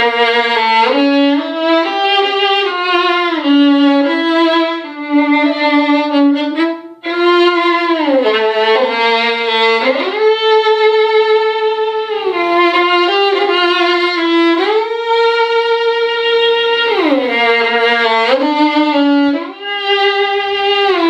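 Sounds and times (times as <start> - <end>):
violin slow low melody: 0.0 - 21.0.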